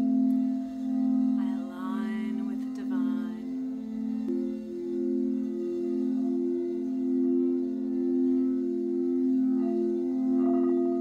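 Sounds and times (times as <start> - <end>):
singing bowls ringing: 0.0 - 11.0.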